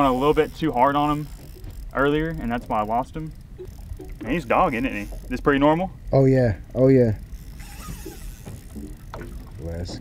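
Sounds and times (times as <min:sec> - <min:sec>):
boat low rumble with hiss: 0:00.0 - 0:10.0.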